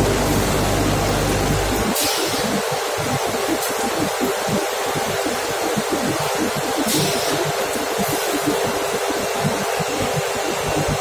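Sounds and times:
industrial machinery hiss and rumble: 0.0 - 11.0.

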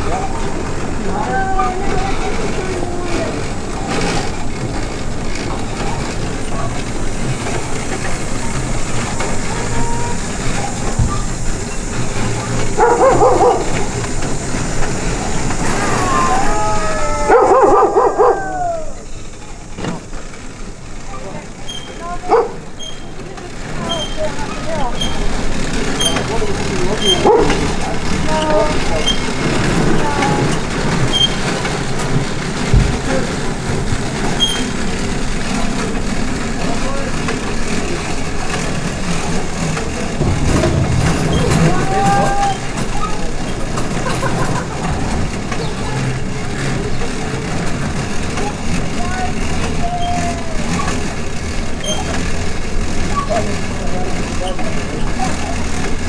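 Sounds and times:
people talking: 0.0 - 4.7, 5.4 - 20.1, 21.0 - 31.3, 32.7 - 33.8, 35.5 - 52.4, 53.0 - 56.0
outdoor background noise: 0.0 - 56.0.

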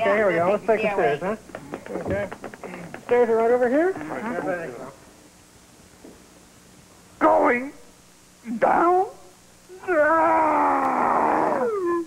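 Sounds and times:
long drawn-out vocal cry: 9.7 - 12.0.

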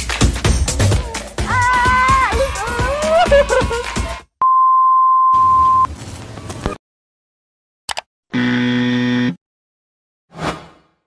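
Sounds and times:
high beep tone: 4.4 - 5.9.

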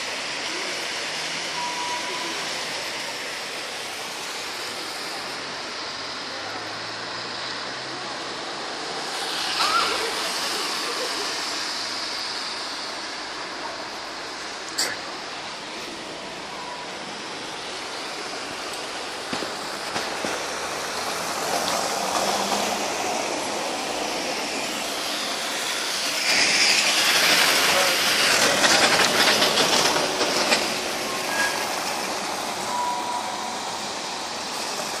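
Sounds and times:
tyre noise on slushy road: 0.0 - 35.0.

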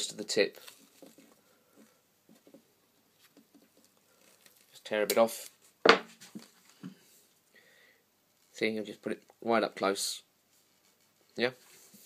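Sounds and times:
masking tape rustling: 0.0 - 7.0.

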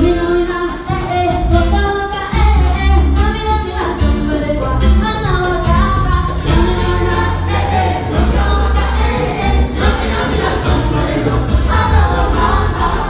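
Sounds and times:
heavy pulsing bass line: 0.0 - 13.0
latin dance band music: 0.0 - 13.0
lead vocal singing: 3.8 - 13.0.

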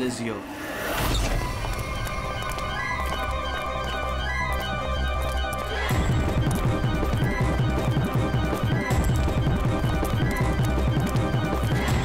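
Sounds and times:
tense drama score: 0.0 - 12.0
galloping low drum rhythm: 5.9 - 12.0.

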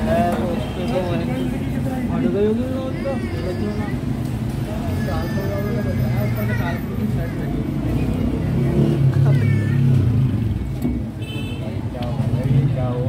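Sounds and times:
traffic rumble: 0.0 - 13.0
voices talking: 0.0 - 13.0.

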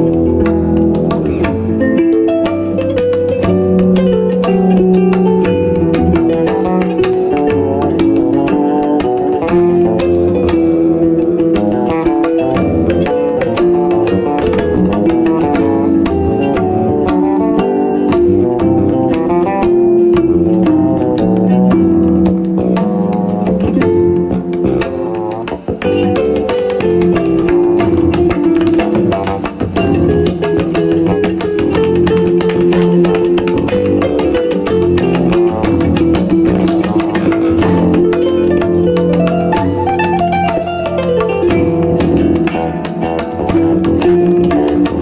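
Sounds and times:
fretless bass plucking: 0.0 - 45.0
hand percussion: 0.0 - 45.0
harp plucking: 0.0 - 45.0.

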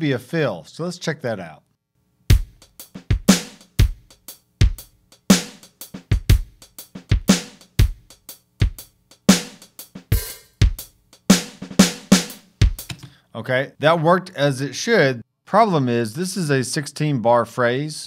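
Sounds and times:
drum kit shuffle groove: 2.3 - 13.2.

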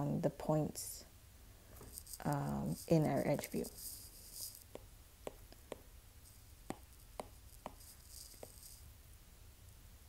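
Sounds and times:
faint low hum: 0.0 - 10.0
taps on glass screen: 4.7 - 5.8, 6.7 - 8.7.

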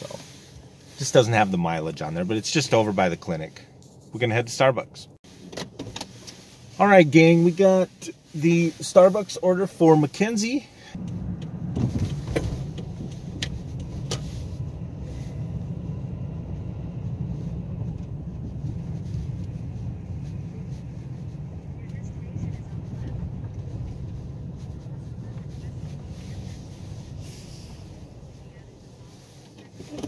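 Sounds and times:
car engine and tyre rumble: 0.0 - 30.0.

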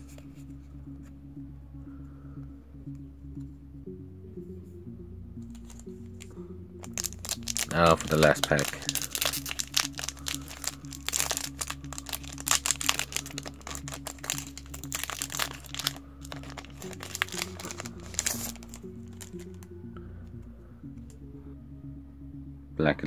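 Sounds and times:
background music: 0.0 - 23.0
foil wrapper crinkling and tearing: 6.8 - 19.5.

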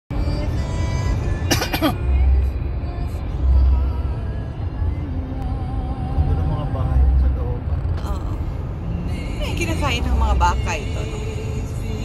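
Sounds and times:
music playing: 0.1 - 12.0
road rumble inside car: 0.1 - 12.0
cough-like vocal burst: 1.5 - 2.0.

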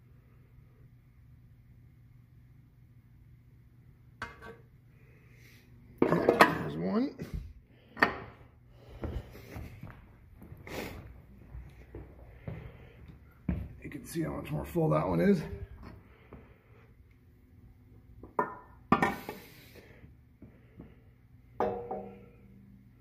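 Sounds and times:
faint low hum: 0.0 - 23.0.

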